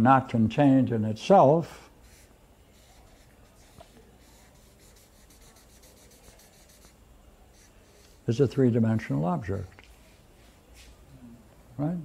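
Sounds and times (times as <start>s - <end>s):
felt-tip marker scratching on paper: 2.0s - 8.2s.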